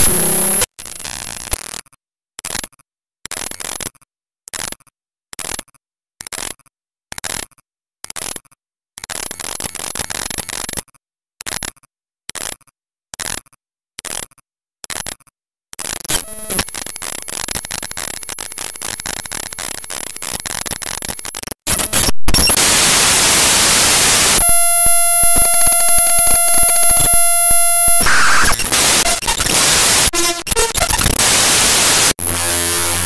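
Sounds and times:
crackling static with clicks: 0.0s - 1.6s, 15.8s - 33.0s
steady electronic beep: 23.4s - 32.2s.

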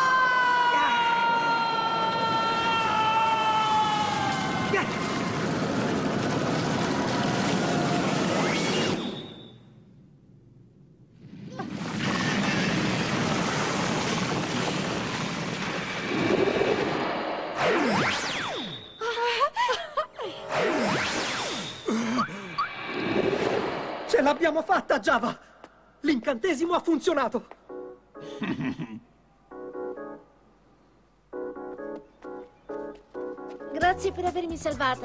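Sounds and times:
woman screaming: 0.0s - 4.7s
rushing noise effect: 11.2s - 18.9s, 20.4s - 25.1s.

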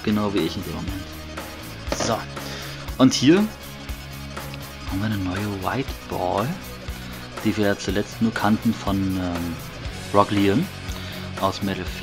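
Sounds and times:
quiet background music: 0.0s - 12.0s
plastic part knocking on plastic: 1.9s - 2.2s.

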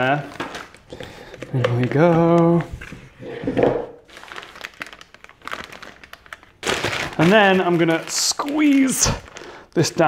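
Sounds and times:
plastic piping bag crinkling: 0.0s - 2.9s, 4.0s - 10.0s.

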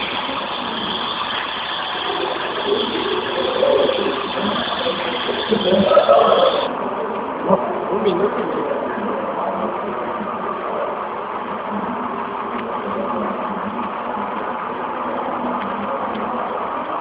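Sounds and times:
model train wheels on rails: 0.0s - 17.0s.

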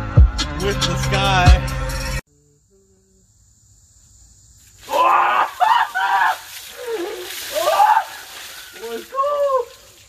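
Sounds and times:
water splashing from a jug: 4.8s - 10.0s
man crying out: 4.9s - 8.2s, 8.8s - 9.8s.

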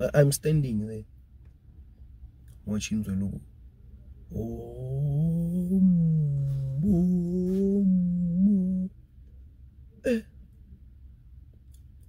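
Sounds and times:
faint low rumble: 0.0s - 12.0s
man humming low: 4.3s - 9.0s, 10.0s - 10.3s.

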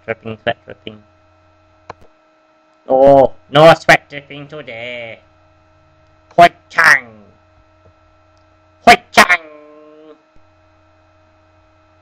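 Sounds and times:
electrical mains hum: 0.0s - 12.0s
low buzz: 0.0s - 12.0s
person's loud vocal syllables: 8.9s - 10.2s.

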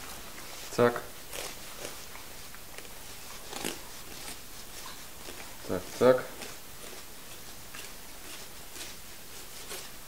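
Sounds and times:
knife cutting through fish: 2.8s - 10.0s.

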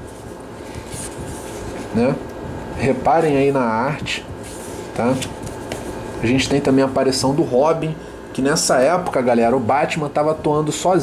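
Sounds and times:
paper pages turning: 4.4s - 6.0s.

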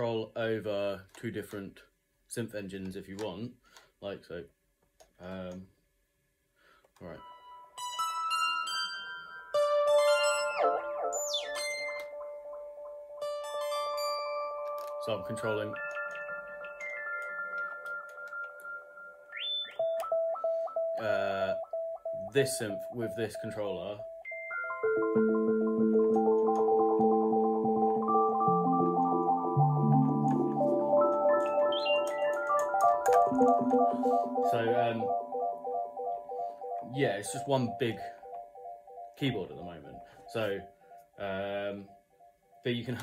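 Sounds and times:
synthesizer notes: 7.2s - 42.8s.

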